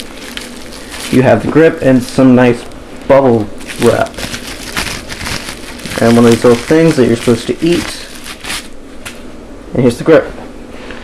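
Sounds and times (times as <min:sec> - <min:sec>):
plastic packaging crinkling: 0:00.0 - 0:09.2.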